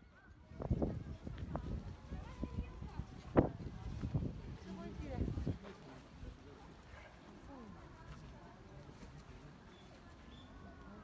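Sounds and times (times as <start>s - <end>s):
people talking: 0.2s - 11.0s.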